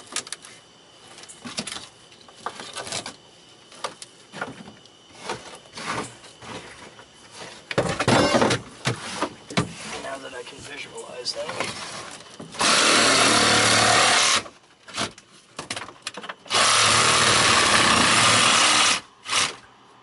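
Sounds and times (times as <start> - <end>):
debris knocks and scrapes: 3.8 - 10.1.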